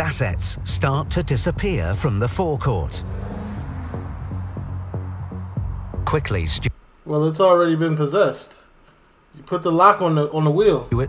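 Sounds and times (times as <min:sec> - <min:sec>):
car engines accelerating: 0:00.0 - 0:06.8
background music with drone: 0:03.0 - 0:06.7.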